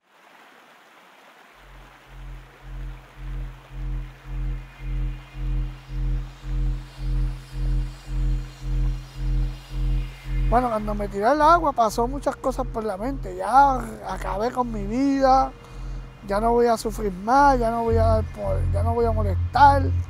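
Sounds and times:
soft hiss: 0.0s - 20.0s
pulsing bass tone: 1.7s - 20.0s.

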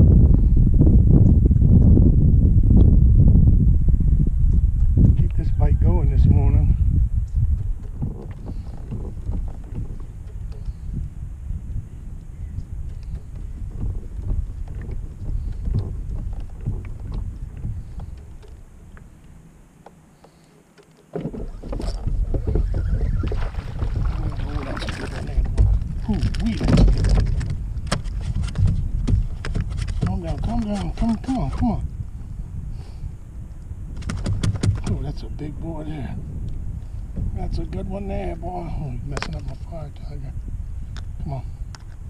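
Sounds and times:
low wind rumble: 0.0s - 42.0s
handling noise: 12.8s - 31.7s.

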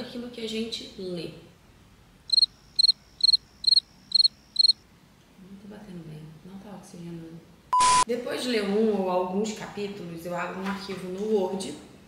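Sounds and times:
cricket chirping: 2.2s - 4.9s
loud beep with hiss: 7.8s - 8.1s.

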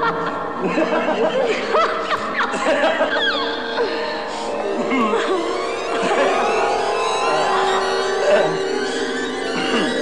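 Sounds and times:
background music with held notes: 0.0s - 10.0s
person chuckling: 8.2s - 8.6s.

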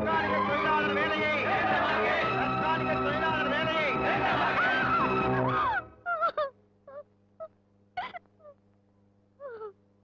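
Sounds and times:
woman sobbing: 5.6s - 8.6s, 9.4s - 9.8s.

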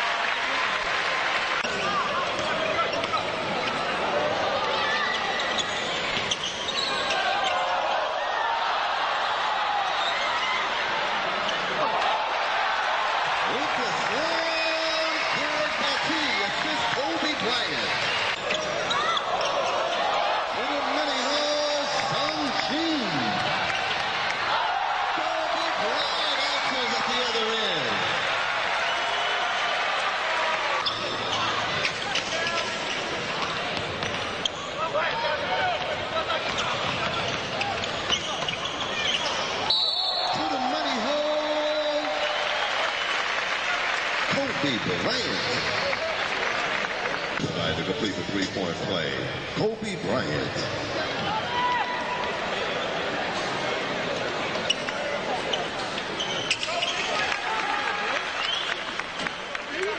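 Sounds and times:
arena crowd noise: 0.0s - 59.9s
sneaker squeaks on hardwood: 5.1s - 7.2s, 36.4s - 39.5s, 54.6s - 57.2s.

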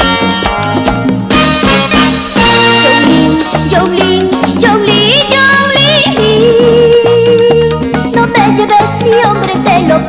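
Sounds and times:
cumbia band playing: 0.0s - 10.0s.

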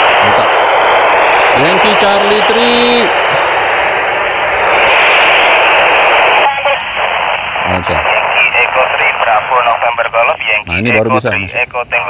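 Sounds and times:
faint choppy radio voices: 0.0s - 12.0s
radio static hiss: 0.0s - 12.0s.

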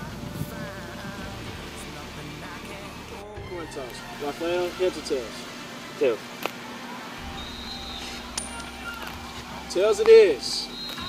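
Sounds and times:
coin clinking on hard court: 8.0s - 9.4s.

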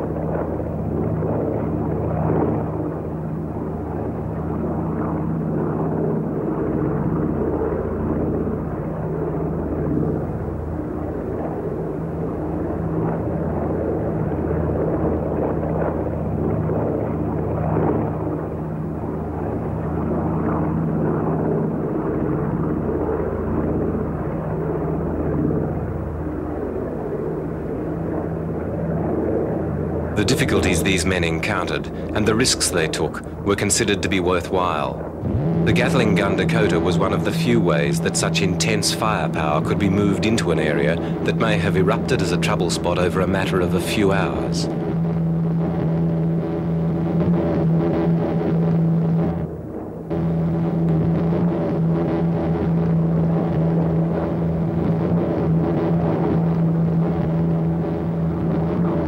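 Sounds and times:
propeller aircraft engines droning: 0.0s - 59.0s.

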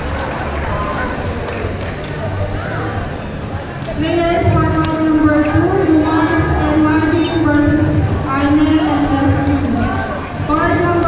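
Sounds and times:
babble of many voices: 0.0s - 11.0s.

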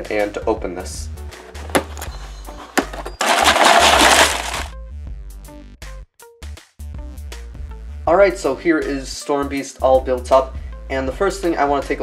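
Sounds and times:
background music with bass line: 0.0s - 9.1s
cardboard tearing: 1.4s - 4.7s
cardboard box click: 1.6s - 4.6s.

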